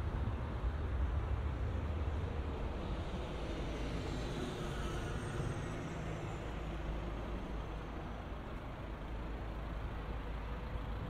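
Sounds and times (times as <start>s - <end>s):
traffic rumble: 7.4s - 11.0s.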